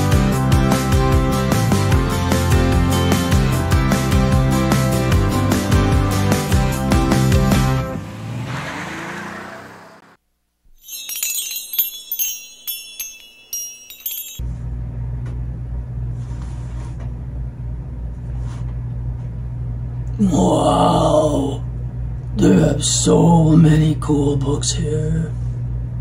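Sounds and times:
intro music: 0:00.0 - 0:08.0
low room hum: 0:11.1 - 0:26.0.

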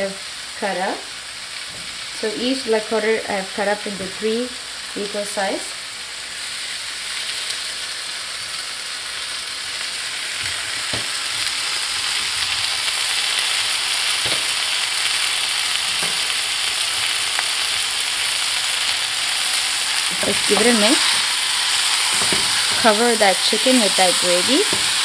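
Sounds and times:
chicken sizzling in hot oil: 0:00.0 - 0:25.0.

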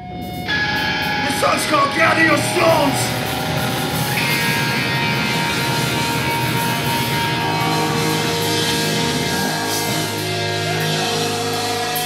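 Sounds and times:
distorted electric guitars droning: 0:00.0 - 0:12.0.

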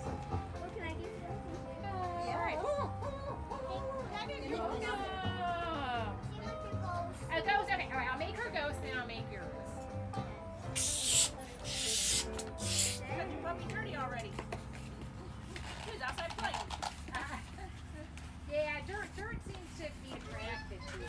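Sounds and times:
balloon pump hissing: 0:10.7 - 0:13.1
balloon squeaking being twisted: 0:10.8 - 0:13.0.

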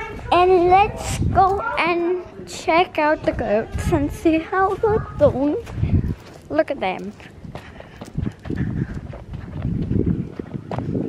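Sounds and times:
footsteps on dirt path: 0:02.9 - 0:11.0.

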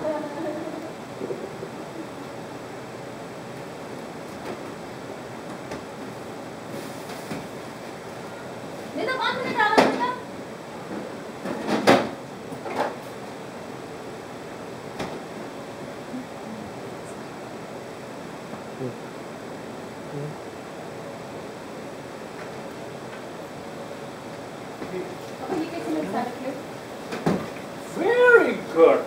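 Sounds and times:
steady hiss: 0:00.0 - 0:29.0.

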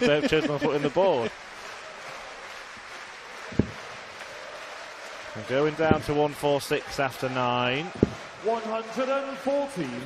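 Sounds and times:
murmur of crowd: 0:00.0 - 0:10.0.

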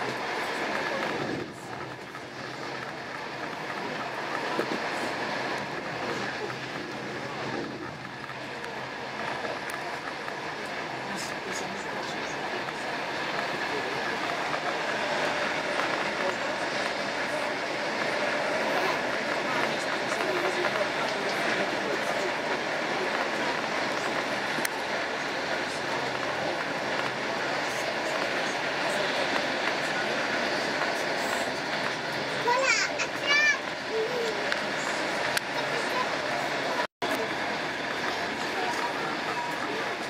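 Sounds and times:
faint passenger voices: 0:00.0 - 0:40.0
train wheels rumbling on track: 0:00.0 - 0:40.0.

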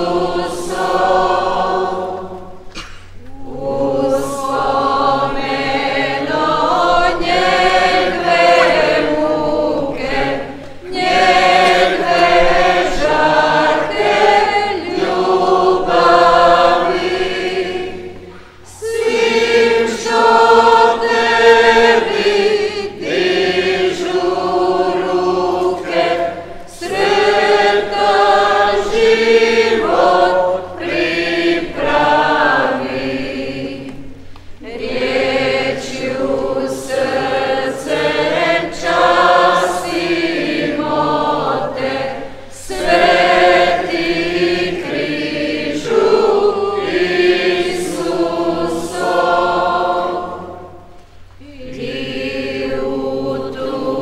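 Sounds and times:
group singing a hymn: 0:00.0 - 0:54.0.

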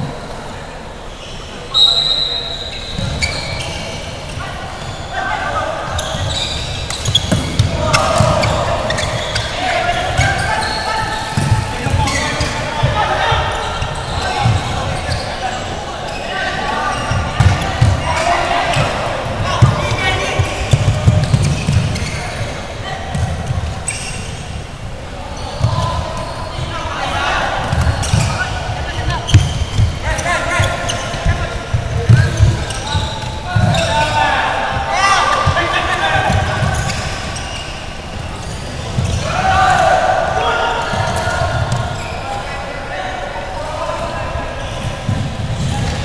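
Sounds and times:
players shouting: 0:01.7 - 0:46.0.

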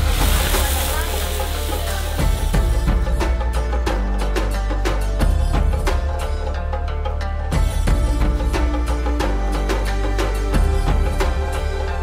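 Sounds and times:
flambe hissing and sizzling: 0:00.0 - 0:02.9.

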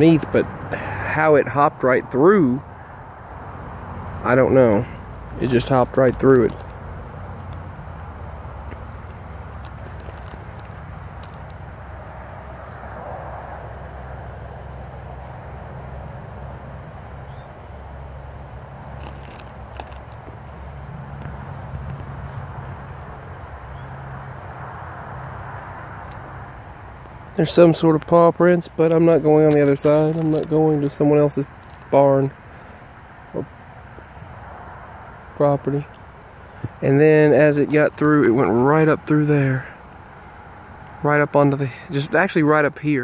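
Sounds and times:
low outdoor rumble: 0:00.0 - 0:43.0.

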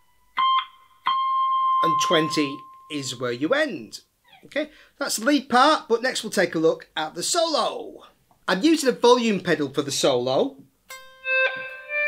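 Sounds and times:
clean electric guitar notes: 0:10.9 - 0:12.0.

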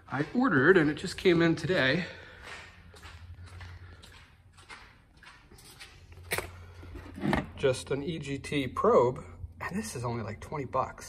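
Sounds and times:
footsteps on concrete: 0:00.0 - 0:06.7.

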